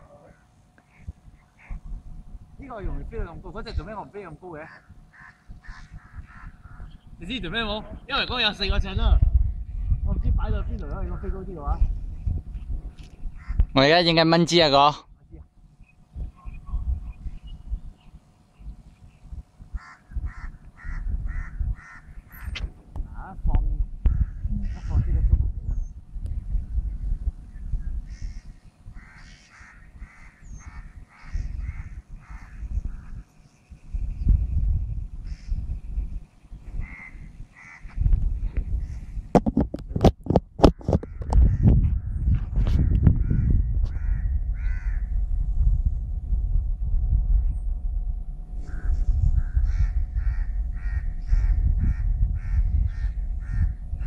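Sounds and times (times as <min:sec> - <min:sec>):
wind rumbling on microphone: 0:00.0 - 0:54.0
bird harsh calls: 0:00.2 - 0:01.9, 0:04.5 - 0:07.3, 0:13.3 - 0:13.8, 0:15.8 - 0:22.6, 0:28.0 - 0:34.2, 0:35.2 - 0:38.0, 0:38.8 - 0:39.2, 0:43.2 - 0:45.1, 0:48.6 - 0:53.8.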